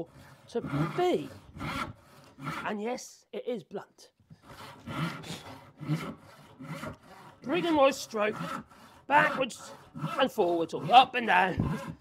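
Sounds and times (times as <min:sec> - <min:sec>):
hand saw rasping through wood: 0:00.0 - 0:02.8, 0:04.4 - 0:12.0.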